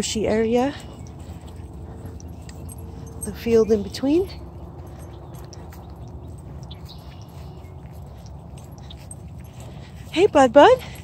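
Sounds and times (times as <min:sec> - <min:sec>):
wind rumble: 0:00.0 - 0:11.0.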